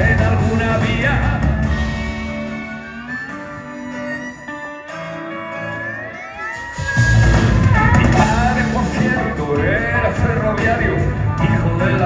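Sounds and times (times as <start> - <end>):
live band playing: 0.0 - 12.0
rising sliding notes: 0.4 - 9.8.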